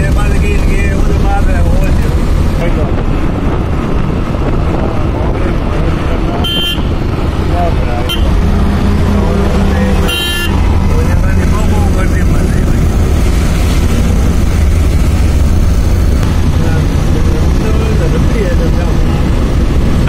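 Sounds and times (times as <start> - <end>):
vehicle engine and road rumble: 0.0 - 20.0
short horn toots: 6.4 - 6.9, 10.0 - 10.6.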